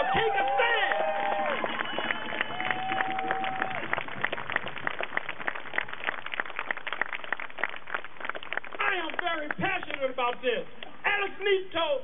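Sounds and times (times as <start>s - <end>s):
audience clapping: 0.0s - 10.9s.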